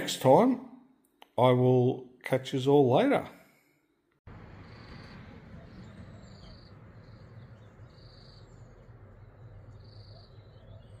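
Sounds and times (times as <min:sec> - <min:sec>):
low steady rumble: 0:04.3 - 0:11.0.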